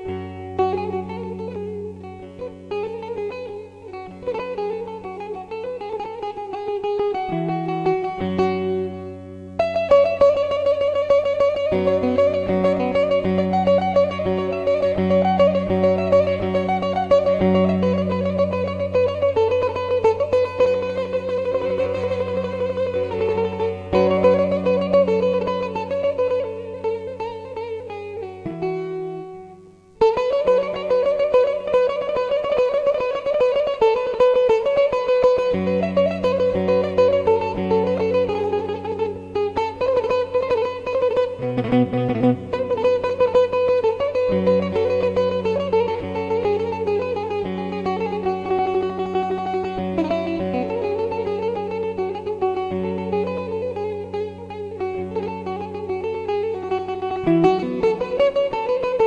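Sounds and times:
oud improvised melody: 0.0 - 59.0.

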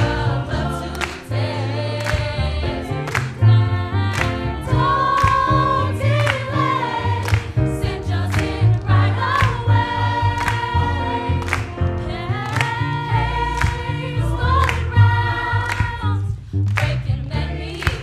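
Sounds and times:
choir singing gospel chords: 0.0 - 18.0
low bass line: 0.0 - 18.0
hand clapping: 0.9 - 1.3, 2.0 - 2.4, 3.0 - 3.5, 5.0 - 9.8, 10.4 - 11.8, 12.4 - 13.9, 15.6 - 16.1, 16.7 - 17.0, 17.8 - 18.0.

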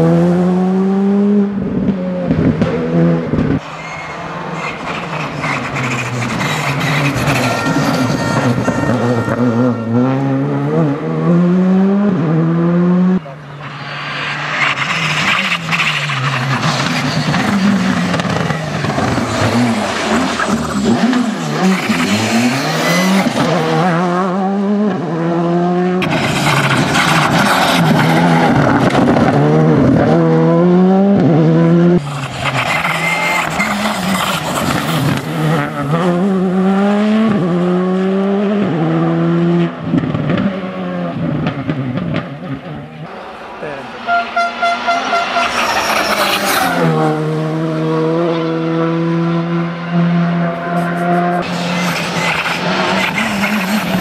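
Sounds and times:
rally car engine revving hard: 0.0 - 3.6, 4.3 - 13.4, 14.4 - 43.0, 45.1 - 54.0.

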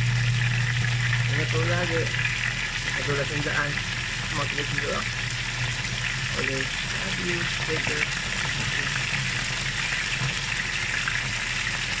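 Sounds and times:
meat sizzling in oil: 0.0 - 12.0.

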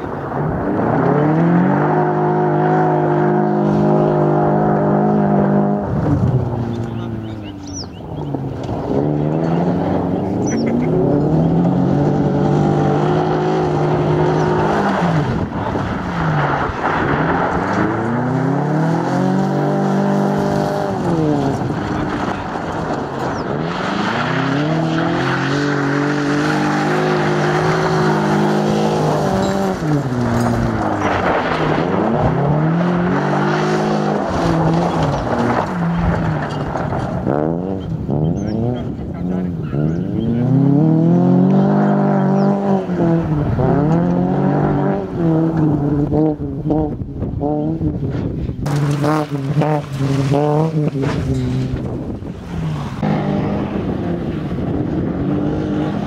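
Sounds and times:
car engine revving hard: 0.0 - 56.0.

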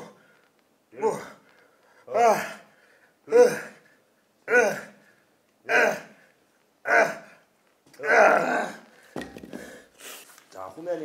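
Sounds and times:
man's forceful huffs: 8.9 - 10.2.

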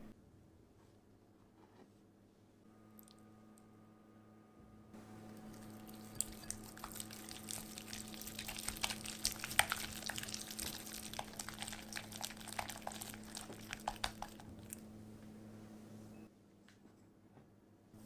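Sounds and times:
whisk beating cream cheese: 5.3 - 14.8.

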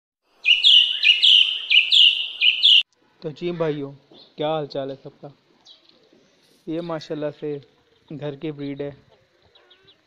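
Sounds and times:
sparrows chirping: 0.4 - 2.9, 3.6 - 4.5, 5.4 - 10.0.

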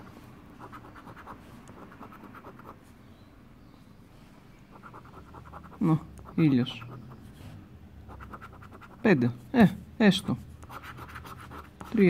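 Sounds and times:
coin scratching lottery ticket: 4.7 - 7.1, 8.1 - 9.0, 10.6 - 12.0.

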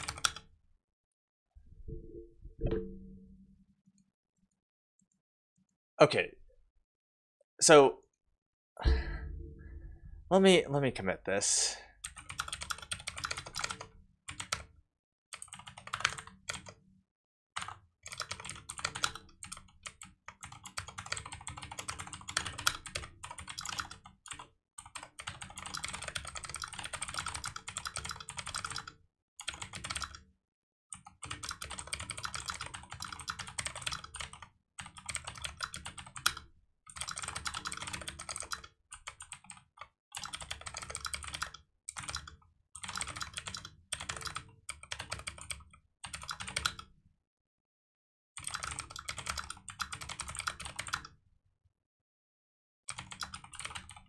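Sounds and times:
typing on computer keyboard: 0.0 - 0.5, 12.0 - 14.7, 15.3 - 16.8, 17.6 - 30.3, 30.9 - 46.9, 48.4 - 51.2, 52.9 - 54.0.

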